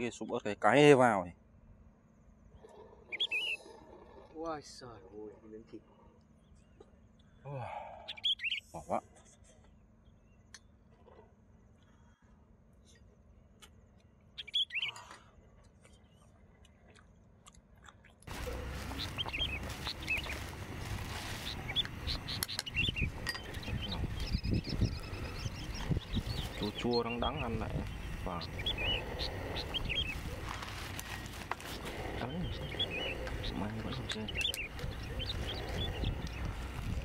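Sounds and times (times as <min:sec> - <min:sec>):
birds chirping: 0:00.0 - 0:17.4, 0:18.1 - 0:37.0
steady outdoor background: 0:00.0 - 0:37.0.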